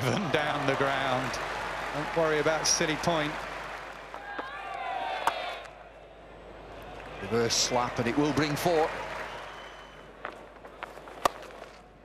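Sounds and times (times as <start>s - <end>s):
cricket bat striking ball: 11.0s - 11.6s.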